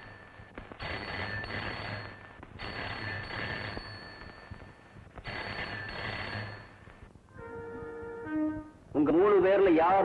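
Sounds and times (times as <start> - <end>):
telephone bell ringing: 0.0 - 8.0.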